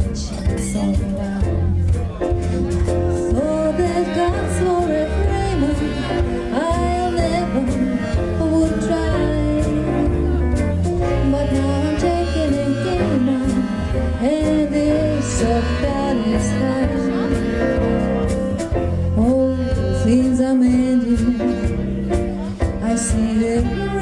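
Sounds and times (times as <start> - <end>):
woman singing: 0.0 - 1.8, 3.2 - 10.4, 11.0 - 17.7, 19.0 - 22.0, 22.6 - 24.0
drums and cymbals: 0.0 - 24.0
walking bass line: 0.0 - 24.0.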